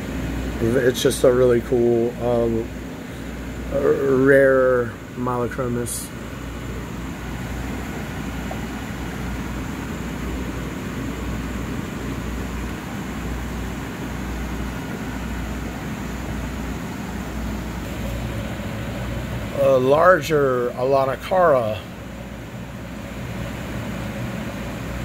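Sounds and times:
aquarium pumps hum and hiss: 0:00.0 - 0:25.0.

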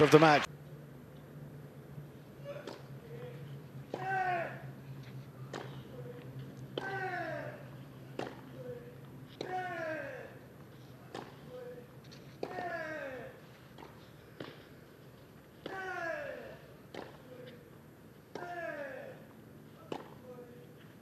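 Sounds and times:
racket striking tennis ball: 0:02.4 - 0:03.0, 0:03.9 - 0:04.6, 0:05.4 - 0:06.0, 0:06.7 - 0:08.6, 0:09.4 - 0:10.0, 0:11.0 - 0:11.5, 0:12.4 - 0:14.8, 0:15.6 - 0:17.3, 0:18.2 - 0:18.9, 0:19.8 - 0:20.2.

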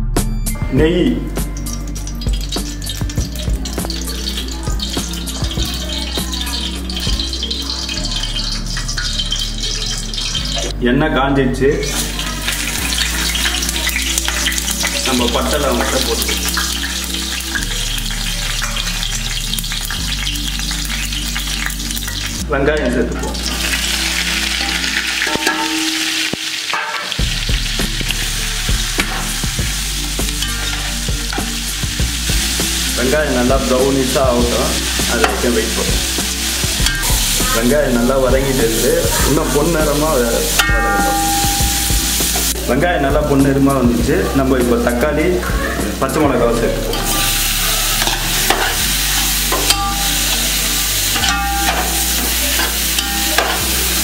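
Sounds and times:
onions sizzling in hot oil: 0:00.8 - 0:10.8, 0:11.6 - 0:54.0
metal spatula scraping a pot: 0:01.6 - 0:10.7, 0:23.1 - 0:32.5, 0:46.9 - 0:54.0
metal spatula knocking pot: 0:24.6 - 0:31.6, 0:40.5 - 0:42.5, 0:48.0 - 0:48.9, 0:49.5 - 0:54.0.

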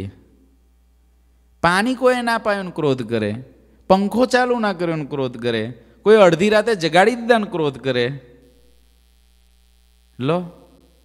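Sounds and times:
faint electrical hum: 0:00.0 - 0:11.0
man speaking: 0:10.2 - 0:10.7.

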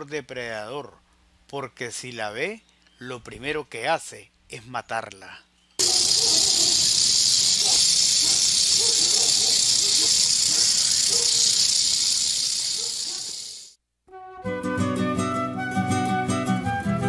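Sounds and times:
rattlesnake rattle buzzing: 0:05.8 - 0:13.8.

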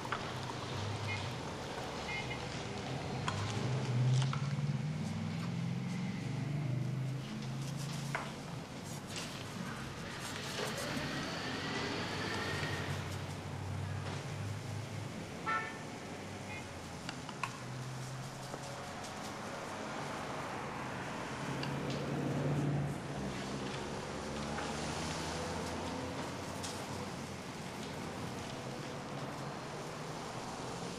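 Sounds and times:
cars passing: 0:00.0 - 0:30.9
car horn toot: 0:15.4 - 0:15.8.

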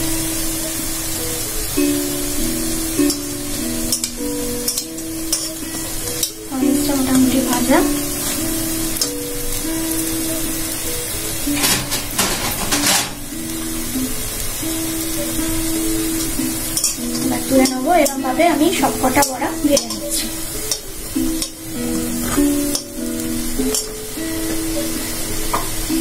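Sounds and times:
fritters sizzling in oil: 0:00.0 - 0:26.0
instrumental music: 0:00.0 - 0:26.0
metal spatula scraping pan: 0:11.4 - 0:13.7.

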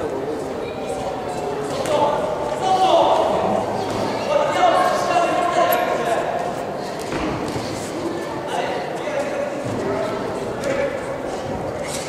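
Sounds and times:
voices calling out echoing: 0:00.0 - 0:12.0.

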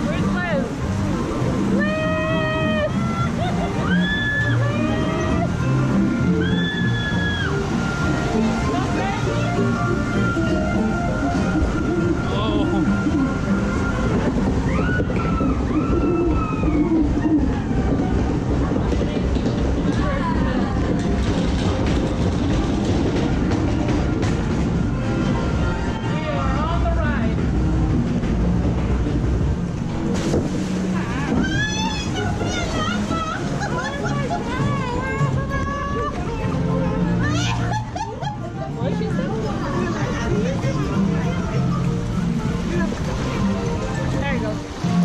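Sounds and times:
ride background music: 0:00.0 - 0:45.0
chain lift rumbling and rattling: 0:17.8 - 0:24.8
voices: 0:30.9 - 0:45.0.

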